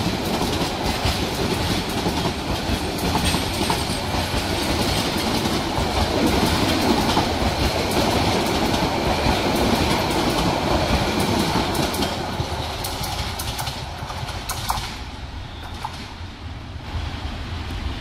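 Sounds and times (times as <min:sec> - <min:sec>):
wheels clicking over rail joints: 0:00.0 - 0:16.2
train coaches rumbling past: 0:00.0 - 0:18.0.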